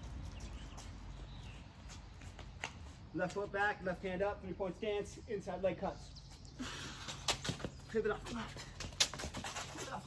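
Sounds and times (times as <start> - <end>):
footsteps on concrete: 0.0 - 4.1, 6.2 - 10.0.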